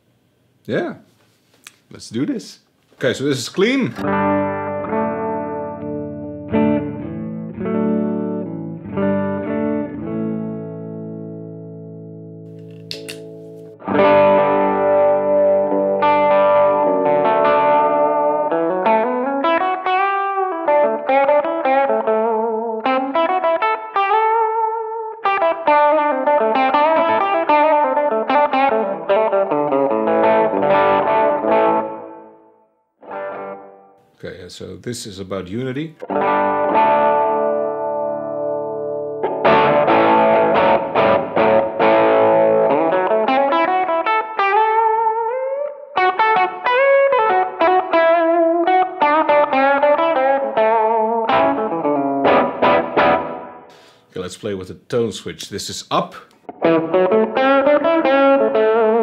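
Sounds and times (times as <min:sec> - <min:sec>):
boosted electric guitar lead lines: 0:03.9 - 0:34.0, 0:36.0 - 0:54.0, 0:56.4 - 0:59.0
clean electric guitar chords: 0:03.9 - 0:34.0, 0:36.0 - 0:54.0, 0:56.4 - 0:59.0.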